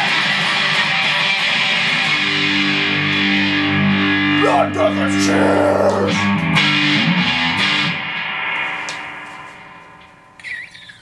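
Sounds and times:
distorted electric guitar chord: 0.0s - 10.4s
high wavering squeal: 10.4s - 11.0s.

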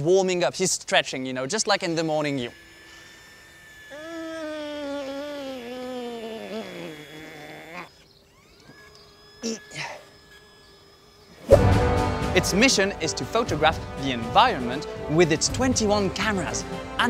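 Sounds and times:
music: 11.5s - 17.0s.

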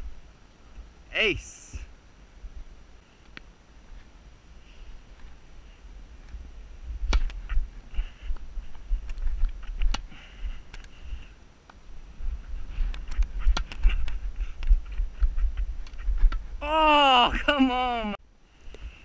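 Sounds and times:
wind and movement rumble: 0.0s - 1.1s, 1.8s - 19.0s.

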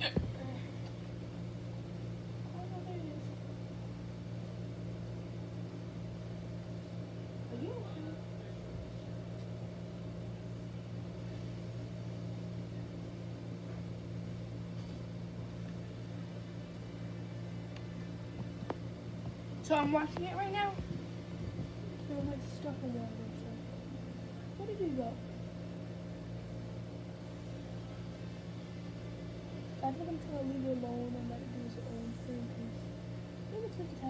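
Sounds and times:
electric fan motor hum: 0.0s - 34.0s.

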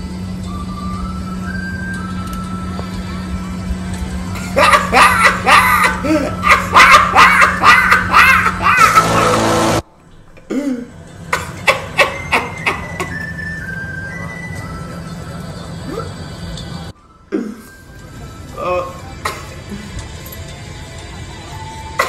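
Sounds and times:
music: 0.0s - 22.0s
steady low hum: 0.0s - 22.0s
hearty laughter: 4.4s - 9.8s, 11.3s - 13.4s.

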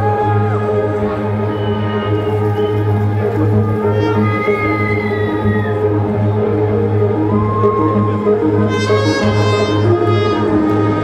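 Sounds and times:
low bass notes: 0.0s - 11.0s
held trumpet note: 8.7s - 11.0s.

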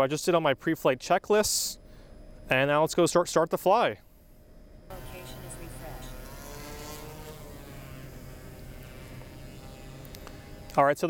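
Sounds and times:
drone rotors buzzing: 4.9s - 10.8s.

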